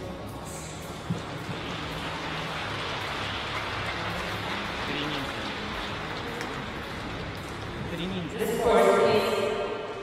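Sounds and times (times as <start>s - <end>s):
audience applauding: 1.1s - 8.3s.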